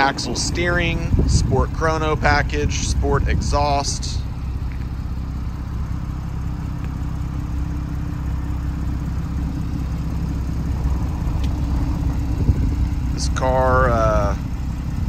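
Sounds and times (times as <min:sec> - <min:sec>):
car engine idling: 0:00.0 - 0:15.0.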